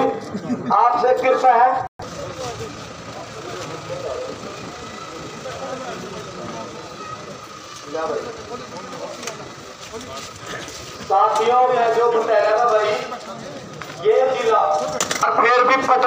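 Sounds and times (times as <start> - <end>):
murmur of distant crowd: 0.0 - 16.0.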